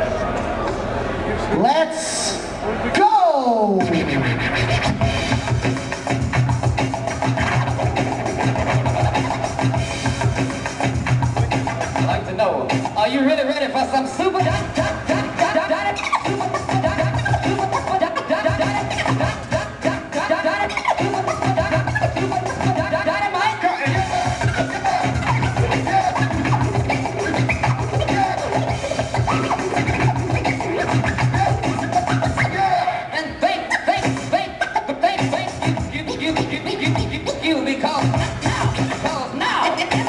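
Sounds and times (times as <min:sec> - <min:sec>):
bass-heavy hip-hop beat: 0:03.6 - 0:40.0
record scratching: 0:03.8 - 0:12.9, 0:14.4 - 0:32.8, 0:33.6 - 0:40.0.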